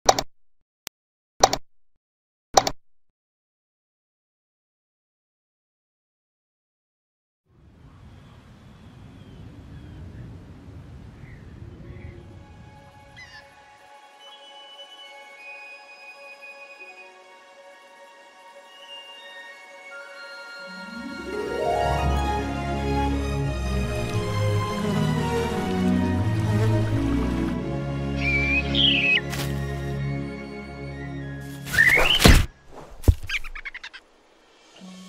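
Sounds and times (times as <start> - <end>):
soft film score: 11.2 - 35.0
high bird-like chirp: 28.2 - 29.3, 31.7 - 32.4.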